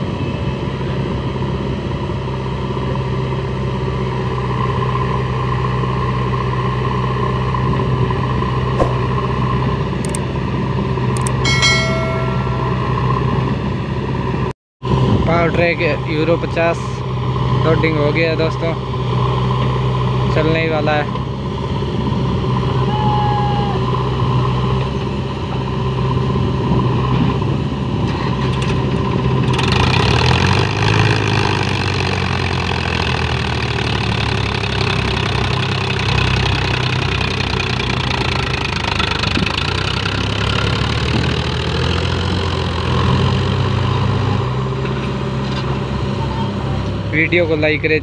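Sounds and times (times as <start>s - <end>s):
tractor diesel engine revving: 23.8s - 48.0s.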